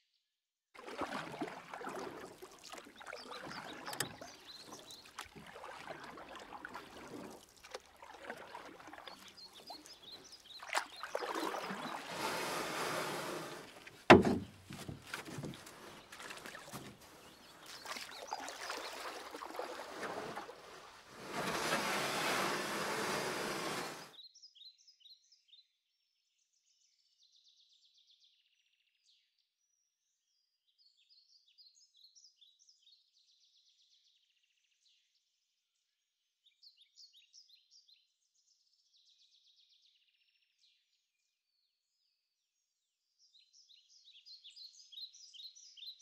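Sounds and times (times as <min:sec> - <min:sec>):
water lapping and splashing: 0:00.8 - 0:24.1
small birds chirping: 0:02.4 - 0:19.8.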